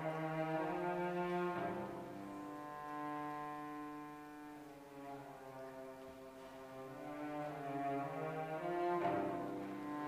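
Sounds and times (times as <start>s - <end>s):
cello bowed low notes: 0.0s - 10.0s.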